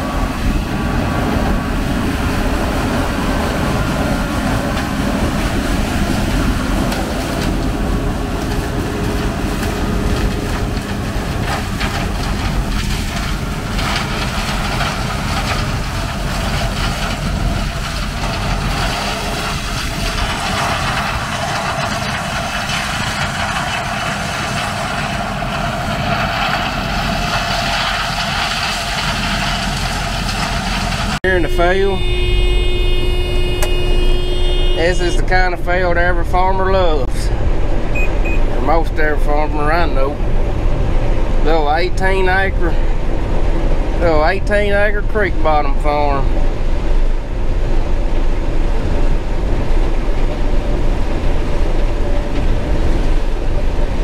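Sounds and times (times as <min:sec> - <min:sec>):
combine harvester engine drone: 0:00.0 - 0:54.0.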